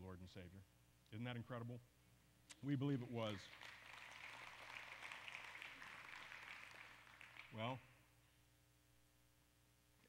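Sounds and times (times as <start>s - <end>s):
congregation applauding softly: 3.2s - 8.0s.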